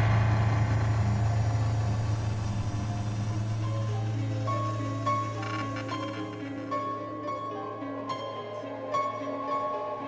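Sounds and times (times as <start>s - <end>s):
low rumbling drone: 0.0s - 9.3s.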